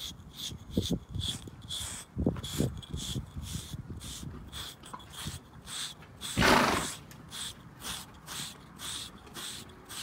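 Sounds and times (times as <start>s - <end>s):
grooming block scraping horse coat: 0.0s - 10.0s
horse snorting: 6.3s - 7.0s.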